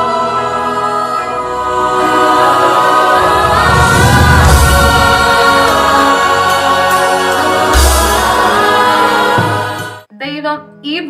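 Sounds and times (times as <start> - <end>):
choir singing sustained chords: 0.0 - 10.1.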